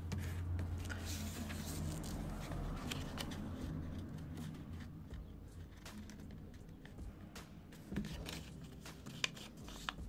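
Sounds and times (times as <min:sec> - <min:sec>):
paper rustling and creasing: 0:00.0 - 0:05.0, 0:05.6 - 0:06.9, 0:07.8 - 0:10.0.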